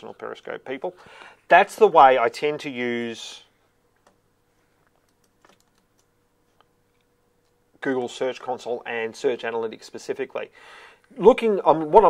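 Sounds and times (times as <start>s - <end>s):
computer keyboard clicks: 4.9s - 6.1s.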